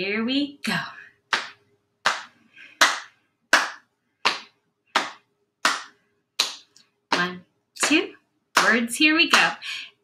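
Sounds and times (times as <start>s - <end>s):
hands clapping: 1.3s - 8.0s, 8.6s - 9.5s
hands patting thighs: 1.3s - 8.0s, 8.6s - 9.5s.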